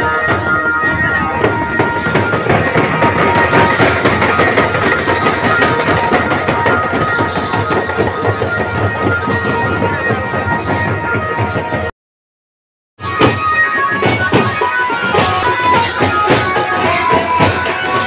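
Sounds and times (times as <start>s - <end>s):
fast dense drumming: 0.0s - 11.8s.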